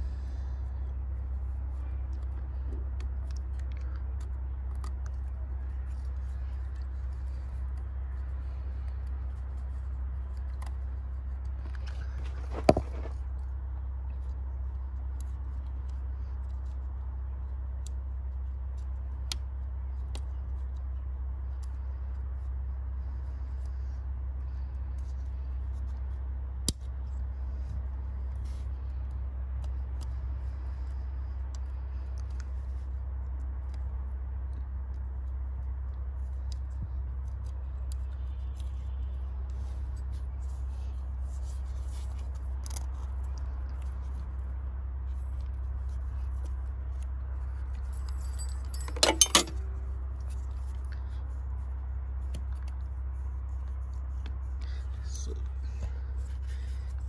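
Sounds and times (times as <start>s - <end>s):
steady low rumble: 0.0s - 57.0s
loud metallic jangle: 48.0s - 49.7s
metal tools clicking: 48.0s - 49.7s.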